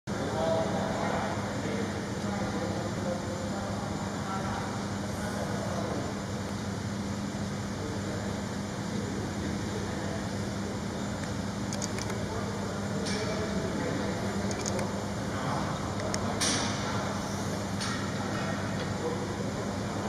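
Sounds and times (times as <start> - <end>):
low mechanical hum: 0.1 - 20.0.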